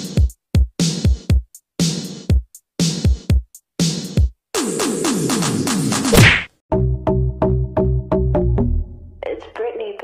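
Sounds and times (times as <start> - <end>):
electronic music beat: 0.0 - 6.1
whoosh and whack effect: 6.0 - 6.5.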